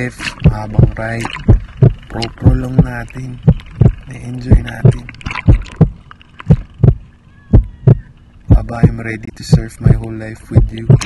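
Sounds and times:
heartbeat thumps: 0.4s - 11.0s.

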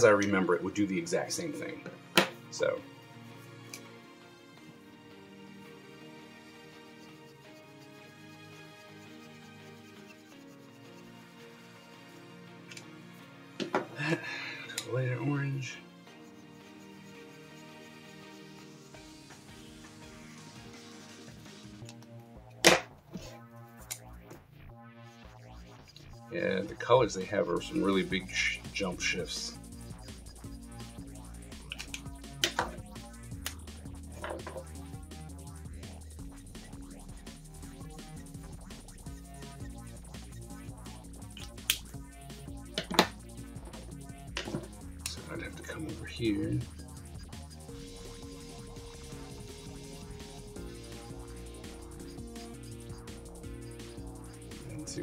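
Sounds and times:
background music: 0.0s - 55.0s.

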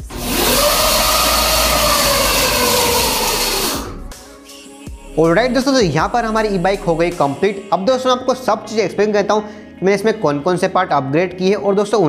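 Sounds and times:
electric motor whine: 0.0s - 4.2s.

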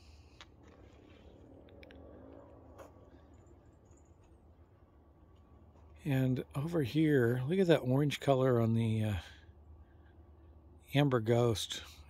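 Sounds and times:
faint outdoor hum: 0.0s - 12.0s.

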